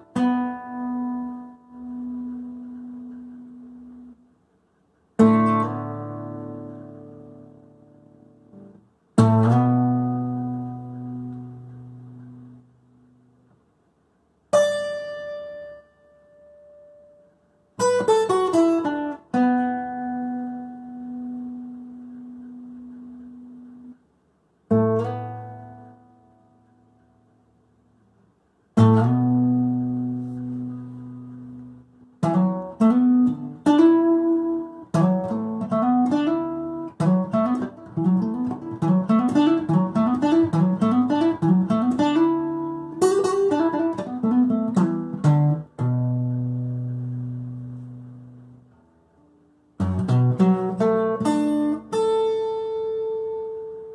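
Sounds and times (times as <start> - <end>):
fingerpicked acoustic guitar: 0.0 - 13.7, 14.4 - 53.9.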